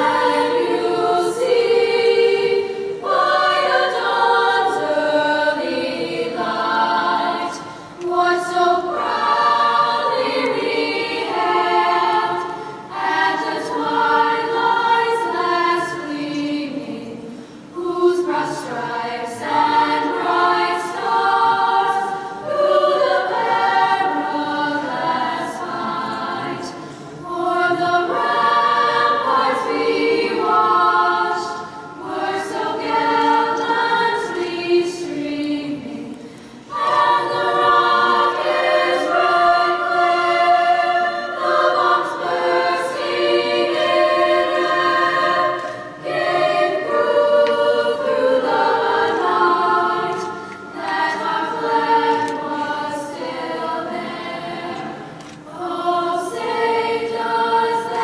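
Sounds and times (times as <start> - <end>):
choir singing: 0.0 - 58.0.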